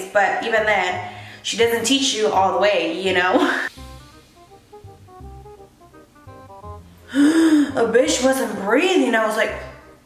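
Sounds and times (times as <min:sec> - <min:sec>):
quiet background music with beat: 0:00.0 - 0:10.0
woman gasping: 0:07.0 - 0:07.8.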